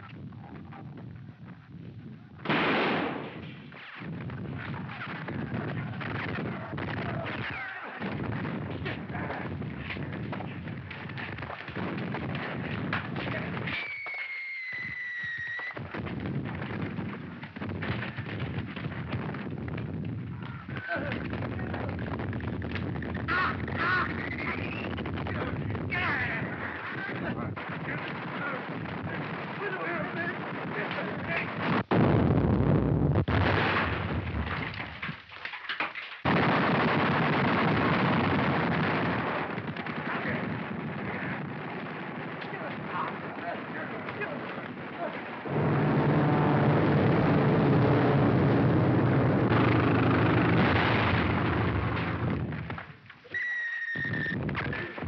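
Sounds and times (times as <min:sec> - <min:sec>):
shell explosions: 0:00.0 - 0:55.0
gunfire: 0:02.4 - 0:14.3, 0:15.6 - 0:32.4, 0:33.2 - 0:35.2, 0:36.2 - 0:47.0
long rumble: 0:45.4 - 0:52.6.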